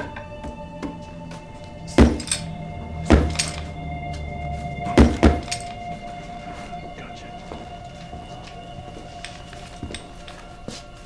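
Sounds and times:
heavy thuds: 0.0 - 10.9
tense droning film score: 0.0 - 11.0.

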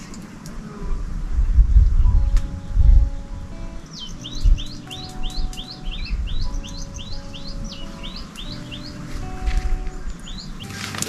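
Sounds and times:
low rumbling wind gusts: 0.0 - 11.0
soft background music: 0.0 - 11.0
songbird singing: 0.0 - 11.0.

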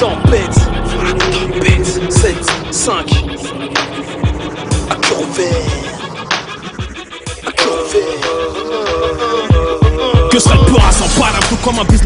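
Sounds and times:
deep kick drums sliding in pitch: 0.0 - 7.5
held synth note: 0.0 - 8.2.

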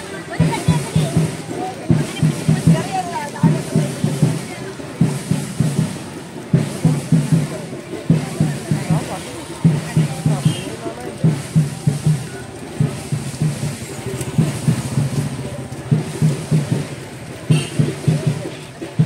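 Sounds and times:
drums beating rhythm: 0.0 - 19.0.

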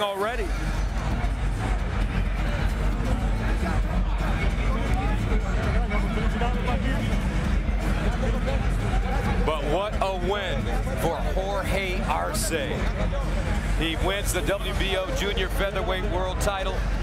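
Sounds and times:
arena crowd din: 0.0 - 17.0.

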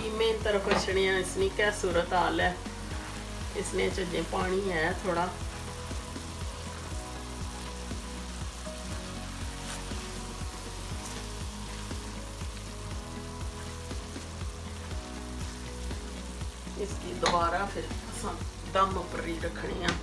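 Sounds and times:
minced meat sizzling: 0.0 - 20.0
water boiling off: 0.4 - 20.0.

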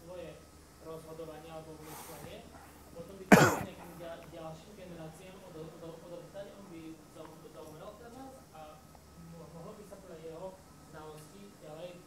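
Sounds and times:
person coughing: 3.3 - 3.7.

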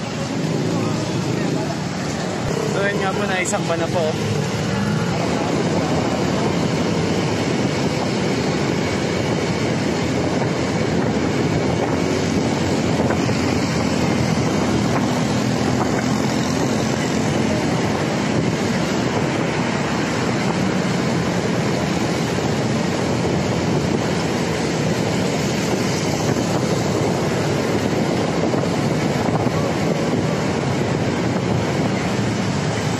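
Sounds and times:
engine rumble: 0.0 - 32.9
road noise: 0.0 - 32.9
wind rush: 0.0 - 32.9.

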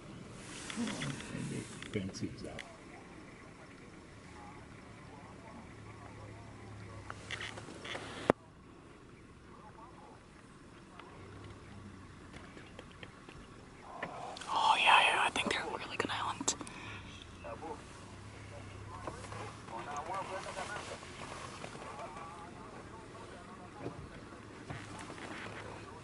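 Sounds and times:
people whispering: 0.4 - 8.9, 13.9 - 26.0.

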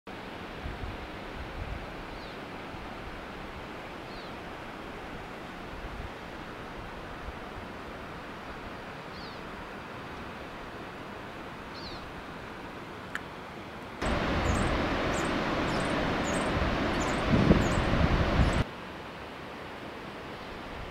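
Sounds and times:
wind rumbling on microphone: 0.6 - 3.8, 14.0 - 18.7.

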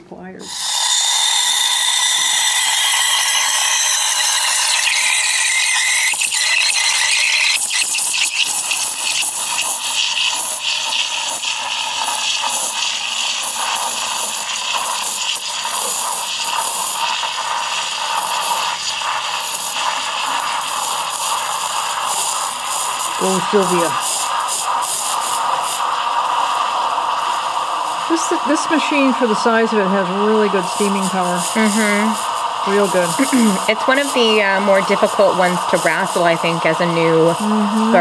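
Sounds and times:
steam wand hissing into milk: 0.4 - 38.0.

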